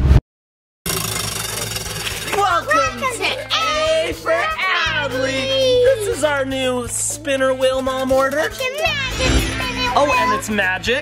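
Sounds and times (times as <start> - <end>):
prize wheel clicking: 0.9 - 3.1
excited voices calling out: 1.3 - 6.6.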